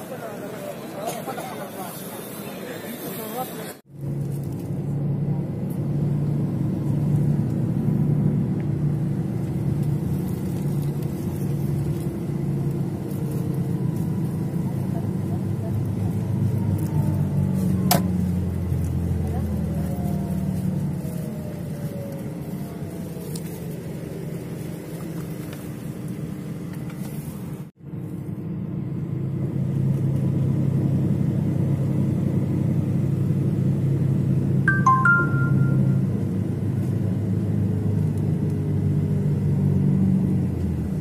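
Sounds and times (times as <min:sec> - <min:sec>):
bus engine and road rumble: 0:00.0 - 0:41.0.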